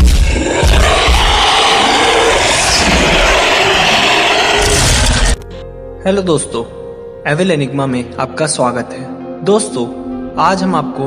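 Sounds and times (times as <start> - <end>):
dinosaur roar: 0.0 - 5.4.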